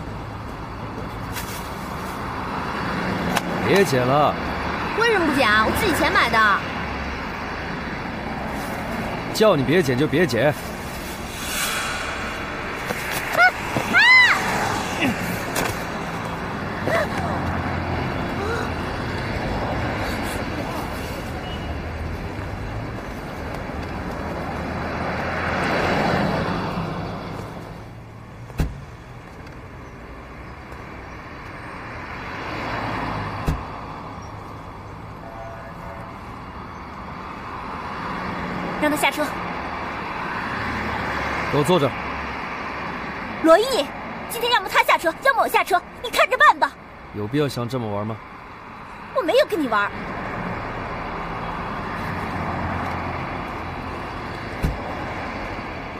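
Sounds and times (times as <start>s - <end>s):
street traffic: 0.0s - 55.9s
vehicle passing: 10.6s - 21.3s.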